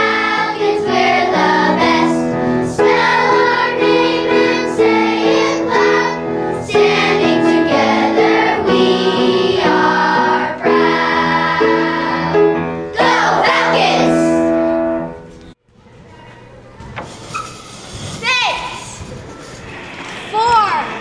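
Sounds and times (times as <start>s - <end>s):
children's choir singing: 0.0s - 14.6s.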